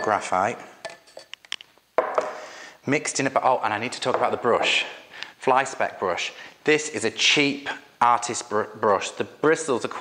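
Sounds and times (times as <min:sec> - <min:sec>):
tin knocking on wooden table: 0:02.0 - 0:02.4.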